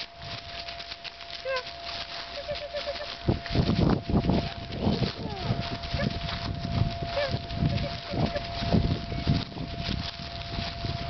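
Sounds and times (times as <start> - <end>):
dog whimpering: 2.3 - 3.2
dog yelping: 2.3 - 3.2, 5.3 - 6.2, 7.1 - 8.6.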